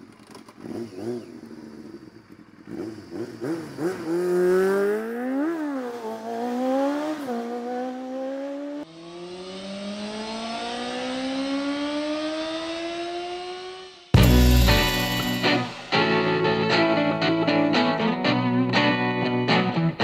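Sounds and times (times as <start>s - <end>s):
engine revving: 0.5s - 16.2s.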